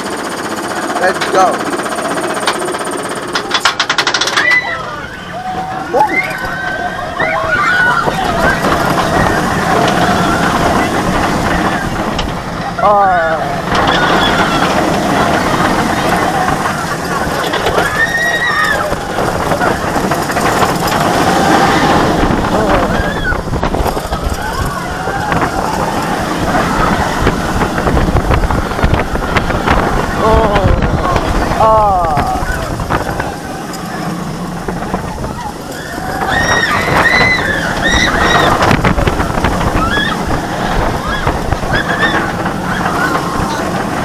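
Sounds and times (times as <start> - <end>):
roller coaster train roaring on track: 0.0 - 44.0
riders screaming and yelling: 3.1 - 44.0.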